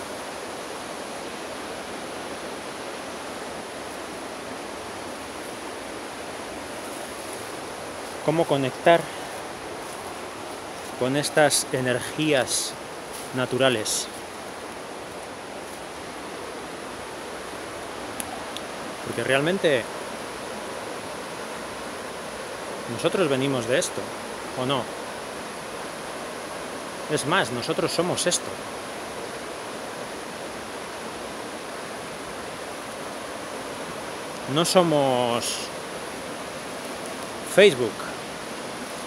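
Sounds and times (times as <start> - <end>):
rushing outdoor background noise: 0.0 - 39.0.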